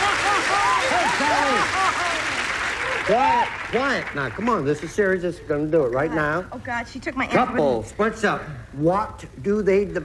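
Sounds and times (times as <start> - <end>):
excited voices calling out: 0.0 - 3.5
audience applauding and cheering: 0.0 - 5.1.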